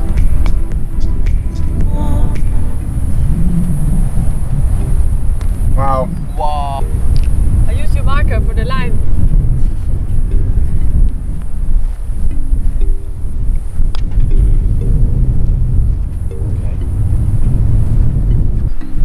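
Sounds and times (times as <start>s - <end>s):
soft music of held chords: 0.0s - 19.0s
wind noise on microphone: 0.0s - 19.0s.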